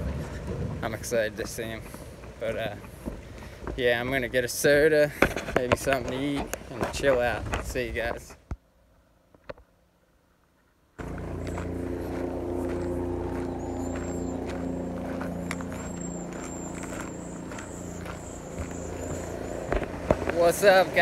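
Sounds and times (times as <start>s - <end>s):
footsteps on gravel: 11.0s - 21.0s
low engine hum: 11.0s - 21.0s
high thin bird chirps: 13.3s - 20.3s.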